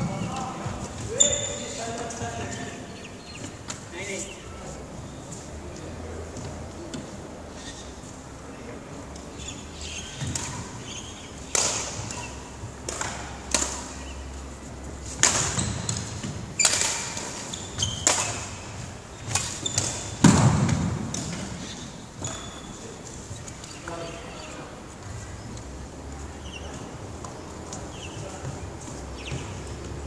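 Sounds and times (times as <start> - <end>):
footsteps on wooden court: 0.0 - 8.1, 18.6 - 30.0
racket striking shuttlecock: 10.0 - 14.4, 15.1 - 21.8.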